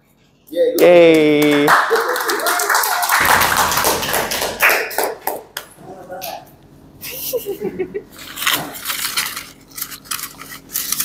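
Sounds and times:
people clapping: 0.8 - 5.8.

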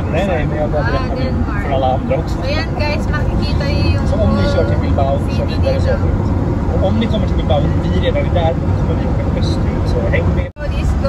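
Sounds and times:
road and engine rumble: 0.0 - 11.0
voices talking: 0.0 - 11.0.

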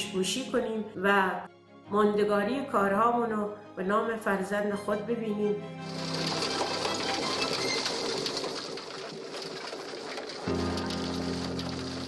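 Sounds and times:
background music: 0.0 - 8.3, 10.5 - 12.0
conveyor belt clattering rattle: 5.9 - 12.0.

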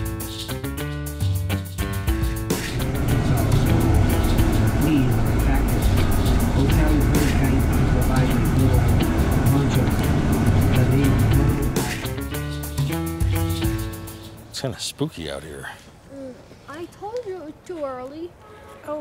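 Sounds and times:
bus engine and road rumble: 2.2 - 18.3
indistinct voices: 2.7 - 12.6.

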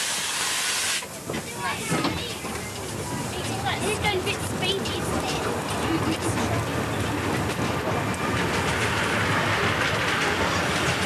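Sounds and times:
steam hiss: 0.0 - 1.1
carriage rumbling on track: 1.0 - 11.0.

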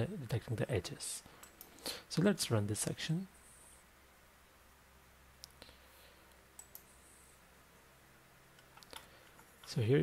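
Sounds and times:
computer mouse clicks: 6.3 - 7.0, 8.6 - 9.8.

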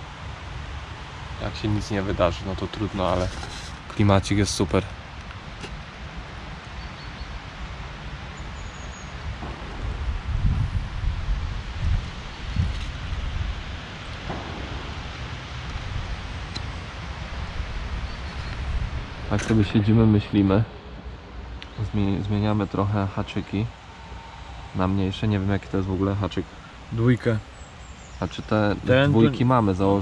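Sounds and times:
wind gusts on microphone: 0.0 - 27.6
leaves rustling in wind: 0.0 - 30.0.

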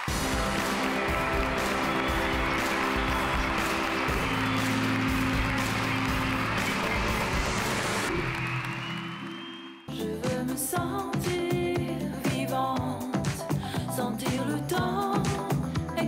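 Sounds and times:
theme music with beat and chords: 0.0 - 16.0.

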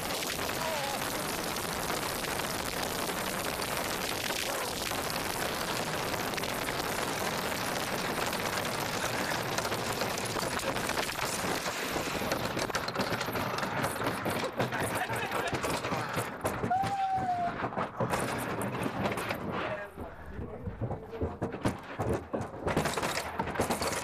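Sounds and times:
bobsled runners rushing on ice: 0.0 - 24.0.

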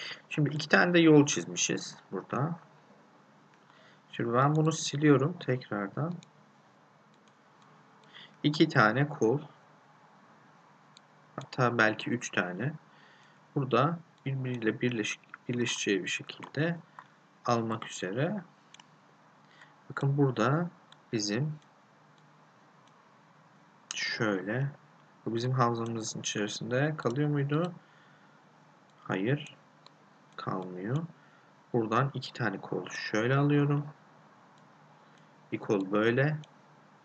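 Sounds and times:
man's voice: 0.0 - 2.6, 4.2 - 6.2, 8.4 - 9.5, 11.4 - 12.8, 13.6 - 16.8, 17.5 - 18.4, 19.9 - 21.6, 23.9 - 27.8, 29.1 - 29.5, 30.4 - 31.1, 31.8 - 33.9, 35.6 - 36.4
room hiss: 0.0 - 37.0
computer mouse clicks: 7.1 - 8.2, 18.7 - 20.0.

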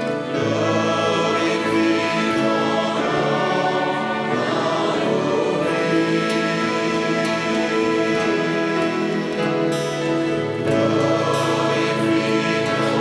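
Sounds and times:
hymn on trumpet and violins: 0.0 - 13.0
voices singing held notes: 0.0 - 13.0.

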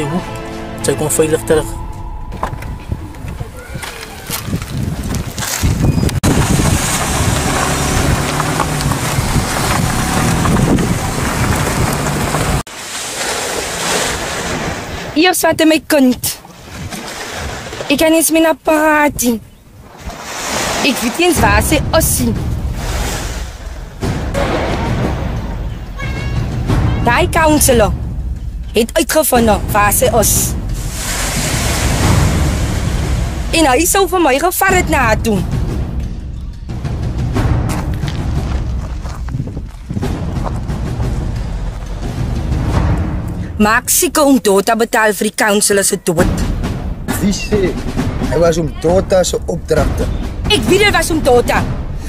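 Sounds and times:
wind buffeting microphone: 1.8 - 12.7, 18.7 - 44.2
loud steady rushing noise: 29.5 - 34.2.

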